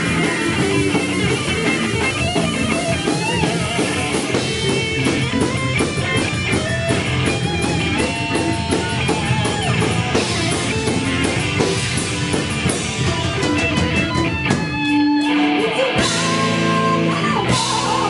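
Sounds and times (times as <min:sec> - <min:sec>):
drum kit: 0:00.0 - 0:18.0
electric guitars: 0:00.0 - 0:18.0.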